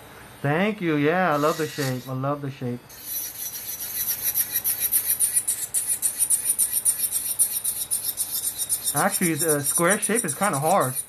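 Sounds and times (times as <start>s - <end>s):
nail drill grinding: 1.3s - 2.1s, 2.9s - 11.0s.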